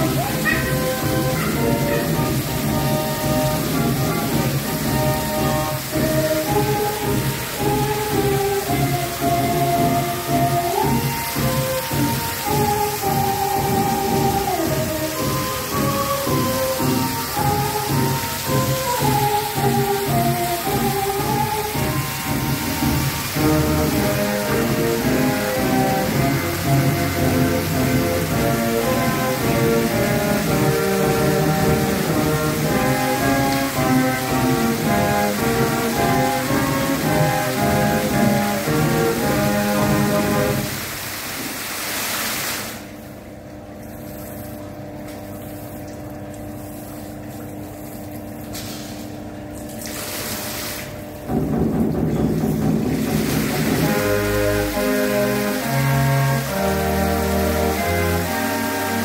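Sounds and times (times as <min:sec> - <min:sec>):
fountain show music: 0:00.0 - 0:59.0
water jets spraying: 0:00.0 - 0:59.0.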